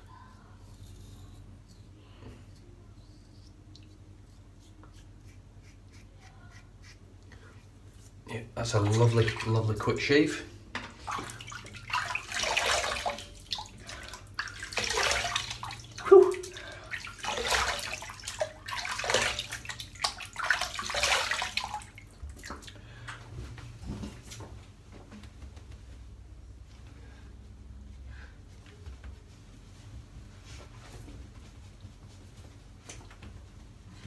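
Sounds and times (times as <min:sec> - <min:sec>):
water splashing on face: 0:11.0 - 0:22.8.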